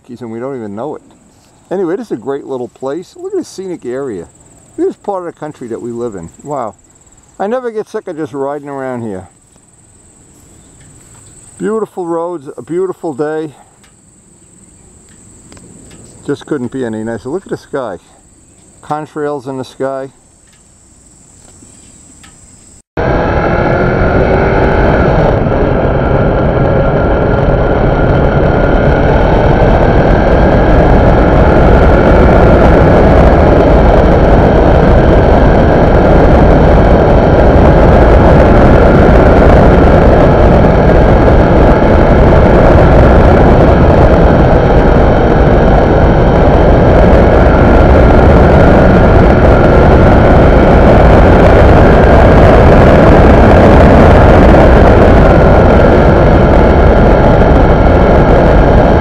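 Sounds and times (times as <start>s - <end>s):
crickets chirping: 0.0s - 22.9s
wind rush: 0.0s - 59.0s.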